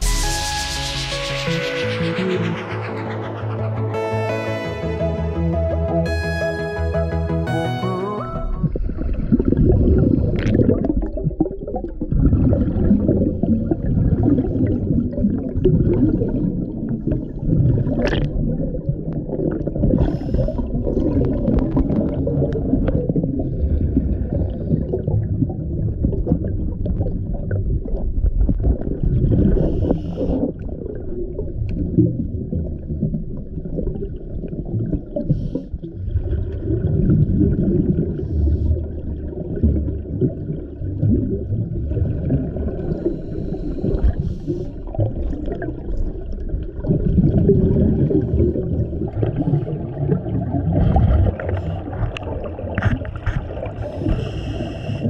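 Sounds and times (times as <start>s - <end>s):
exhaled bubbles underwater: 8.3s - 55.0s
scuba regulator gurgling underwater: 8.4s - 55.0s.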